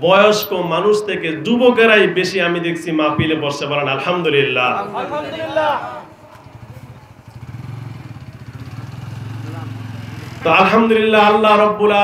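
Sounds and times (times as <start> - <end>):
small engine idling: 6.3 - 10.5.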